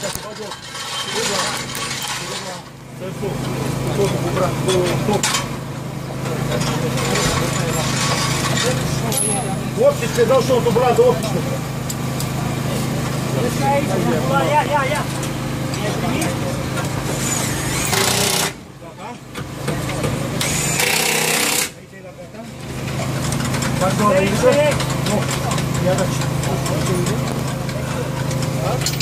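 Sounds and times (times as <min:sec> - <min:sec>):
voices talking: 0:00.0 - 0:17.5, 0:21.7 - 0:29.0.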